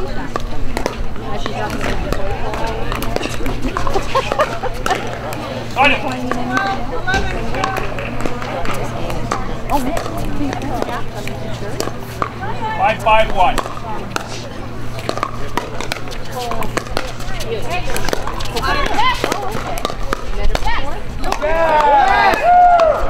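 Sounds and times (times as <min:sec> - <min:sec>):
people chattering: 0:00.0 - 0:23.0
steady low hum: 0:00.0 - 0:23.0.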